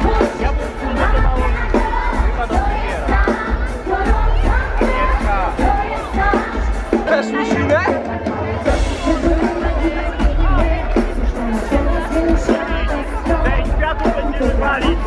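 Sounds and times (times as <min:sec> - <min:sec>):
crowd noise: 0:00.0 - 0:15.0
heavy bass beat: 0:00.0 - 0:15.0
pop music over loudspeakers: 0:00.0 - 0:15.0
woman singing: 0:00.0 - 0:15.0.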